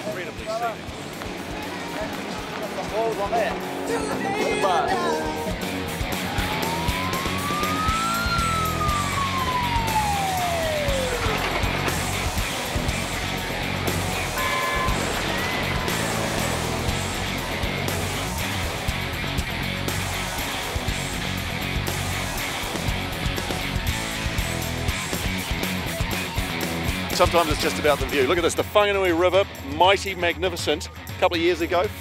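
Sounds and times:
background music: 0:00.0 - 0:32.0
vehicle convoy: 0:00.0 - 0:32.0
fire engine siren: 0:03.7 - 0:13.2, 0:14.0 - 0:19.0.

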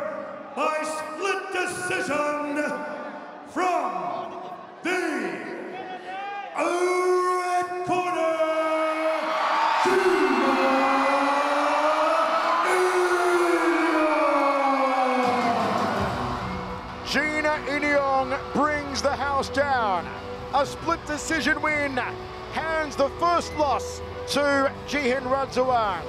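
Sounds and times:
crowd cheering: 0:00.0 - 0:26.0.

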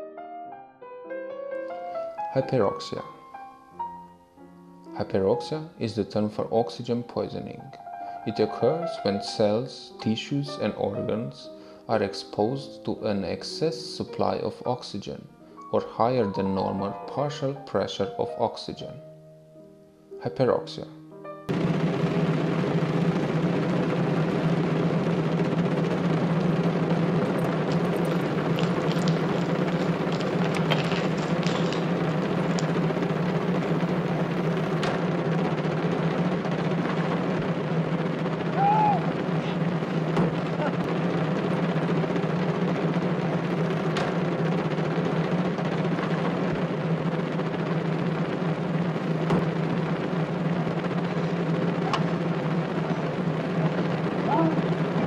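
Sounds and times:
drum roll: 0:21.5 - 0:55.0.

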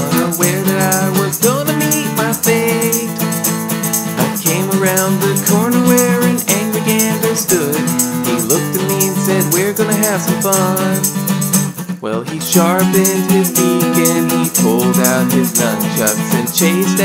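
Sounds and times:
person singing: 0:00.0 - 0:11.4, 0:12.0 - 0:17.0
shaker ticking a beat: 0:00.0 - 0:17.0
strummed guitar: 0:00.0 - 0:17.0.

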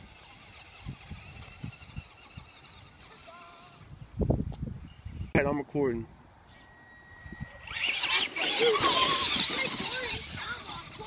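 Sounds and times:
rc truck motor accelerating: 0:00.0 - 0:03.9, 0:07.0 - 0:11.0
tyres churning dirt: 0:00.0 - 0:04.0, 0:07.6 - 0:11.0.

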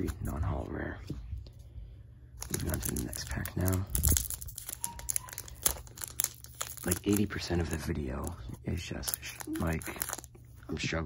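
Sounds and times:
foil wrapper crinkling: 0:02.4 - 0:10.6.

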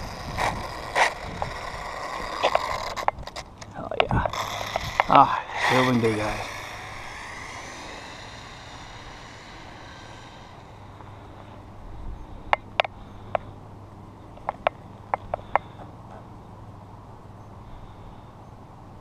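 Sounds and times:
rc car motor whining: 0:00.0 - 0:11.7.

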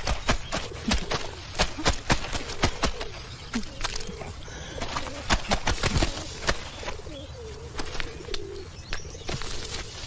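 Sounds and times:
low wavering cooing: 0:07.0 - 0:08.8.

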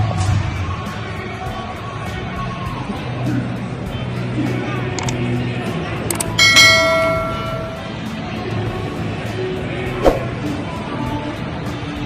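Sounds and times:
background music: 0:00.0 - 0:12.0
sharp click: 0:05.0 - 0:05.2, 0:06.1 - 0:07.8
bright bell chime: 0:06.2 - 0:08.0.

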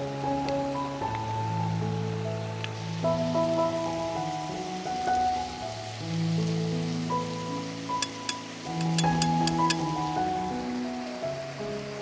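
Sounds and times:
slow background music: 0:00.0 - 0:12.0
chicken sizzling in oil: 0:04.2 - 0:10.6.

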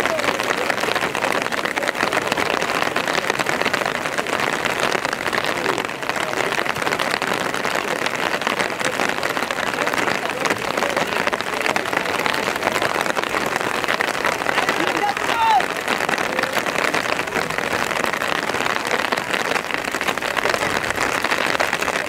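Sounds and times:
dense crackling hiss: 0:00.0 - 0:22.0
players' voices: 0:00.0 - 0:22.0.

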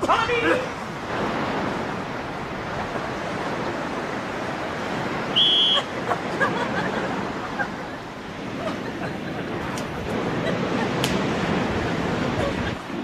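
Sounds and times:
shrill whistle blast: 0:05.3 - 0:05.9.

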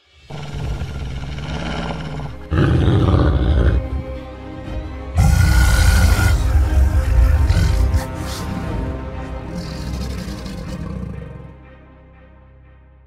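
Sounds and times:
dark cinematic music: 0:00.0 - 0:13.0
deep beast roar: 0:00.3 - 0:04.3, 0:05.1 - 0:11.6.

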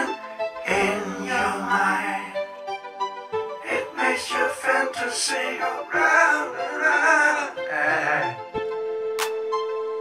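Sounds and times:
person singing: 0:00.0 - 0:02.4, 0:03.6 - 0:08.5.

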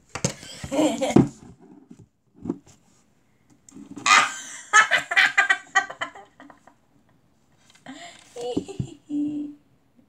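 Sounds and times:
girl laughing and giggling: 0:00.4 - 0:01.3, 0:04.1 - 0:06.7, 0:08.3 - 0:09.6.

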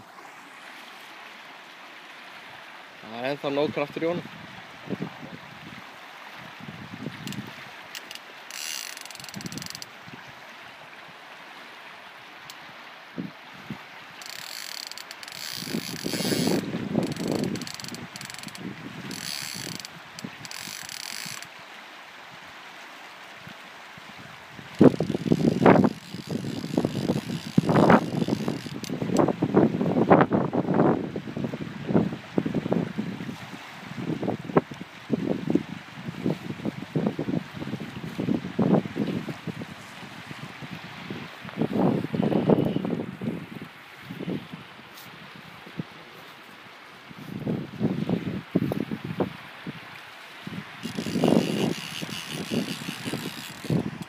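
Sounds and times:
fishing reel drag ratcheting: 0:07.2 - 0:10.0, 0:14.2 - 0:21.6, 0:24.7 - 0:29.3, 0:50.8 - 0:54.0.

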